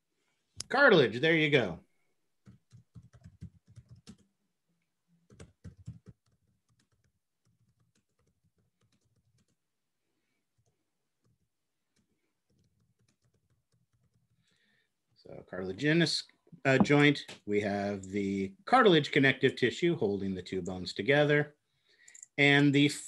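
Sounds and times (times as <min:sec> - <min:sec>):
computer keyboard typing: 0:02.4 - 0:04.3, 0:05.3 - 0:09.6, 0:10.6 - 0:14.4, 0:22.0 - 0:22.4.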